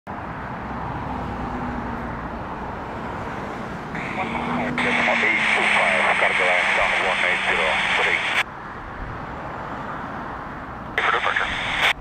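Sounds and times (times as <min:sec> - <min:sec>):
road traffic: 0:00.1 - 0:12.0
wind: 0:00.1 - 0:12.0
radio hiss: 0:04.0 - 0:08.4, 0:11.0 - 0:12.0
voice through radio speaker: 0:04.0 - 0:08.4, 0:11.0 - 0:12.0.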